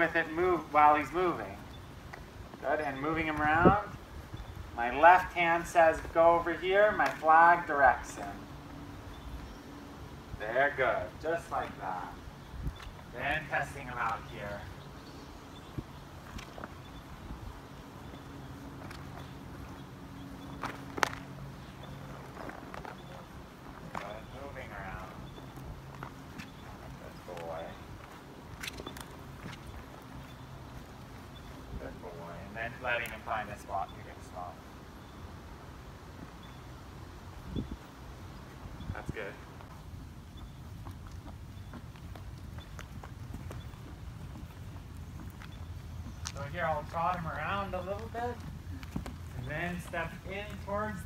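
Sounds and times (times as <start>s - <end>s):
horse hooves on sand: 0.0s - 51.0s.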